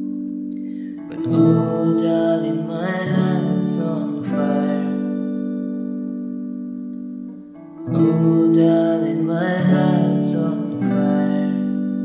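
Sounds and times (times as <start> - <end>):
guitar chord ringing: 0.0 - 12.0.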